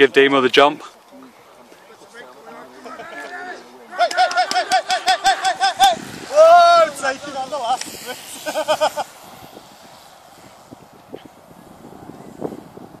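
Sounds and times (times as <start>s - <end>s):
spectators shouting: 1.9s - 9.0s
short repeated calls: 3.2s - 7.0s.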